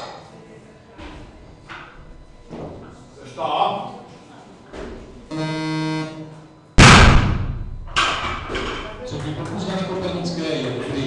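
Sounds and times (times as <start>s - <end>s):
steady electronic tone: 5.3s - 8.0s
barbell crashing onto platform: 6.8s - 8.8s.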